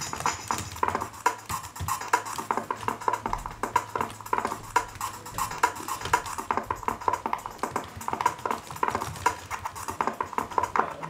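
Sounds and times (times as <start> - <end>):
stuttering electronic drum break: 0.0 - 11.0.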